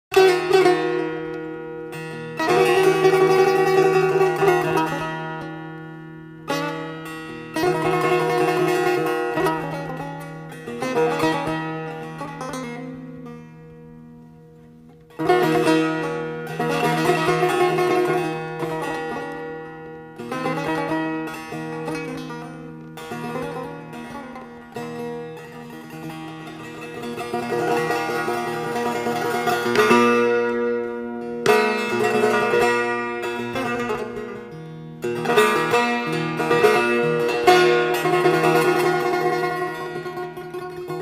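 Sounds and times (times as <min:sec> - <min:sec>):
plucked setar notes: 0:00.1 - 0:41.0.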